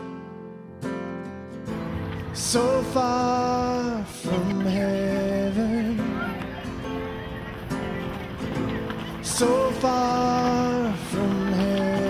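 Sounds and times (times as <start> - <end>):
slow song with singing: 2.2 - 6.6, 9.2 - 12.0.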